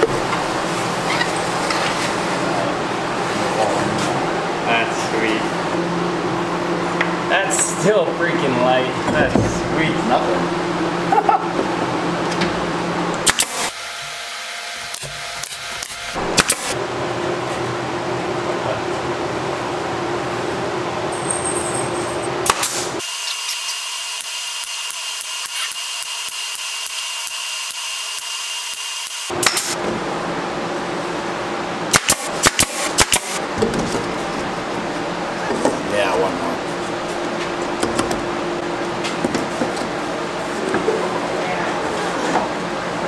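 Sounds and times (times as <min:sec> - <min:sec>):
pneumatic nailer firing into wood: 0:13.2 - 0:16.8, 0:22.4 - 0:29.8, 0:31.9 - 0:33.4.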